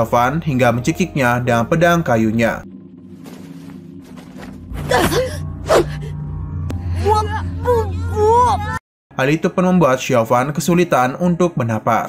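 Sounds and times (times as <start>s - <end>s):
tense music drone: 0.0s - 9.3s.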